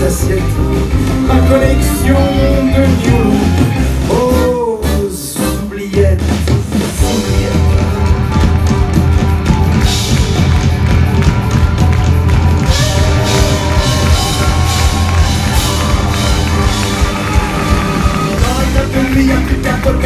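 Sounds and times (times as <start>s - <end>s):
drums: 0.0s - 20.0s
electric guitar: 7.0s - 20.0s.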